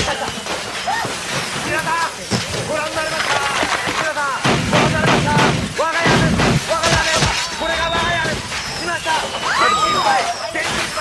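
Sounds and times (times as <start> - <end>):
steady background hiss: 0.0 - 11.0
voices talking: 0.0 - 11.0.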